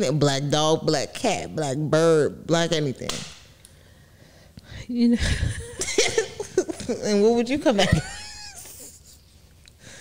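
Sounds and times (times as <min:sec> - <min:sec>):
woman's squeaky laugh: 0:07.9 - 0:09.1.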